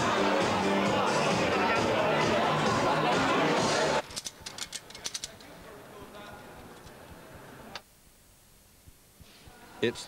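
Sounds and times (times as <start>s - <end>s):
sharp clicks and rattles: 4.0s - 5.5s
low background hiss: 4.2s - 10.0s.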